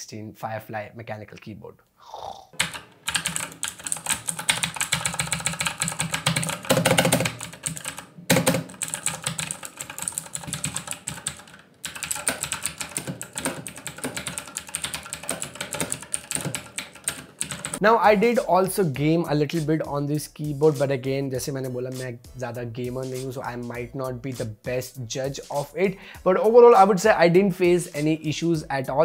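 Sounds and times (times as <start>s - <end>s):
mechanical keyboard typing: 2.6s - 17.8s.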